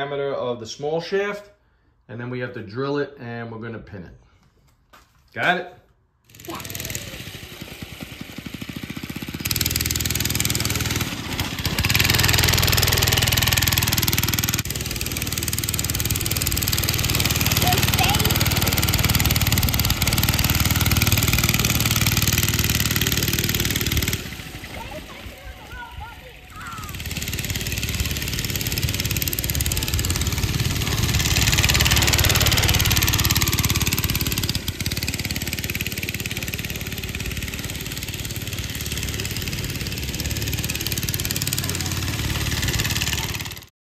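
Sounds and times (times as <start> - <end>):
go-kart engine revving: 6.3 - 43.7.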